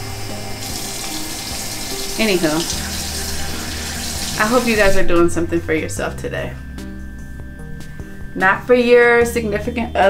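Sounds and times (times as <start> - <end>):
tap water running into sink: 0.0 - 5.0.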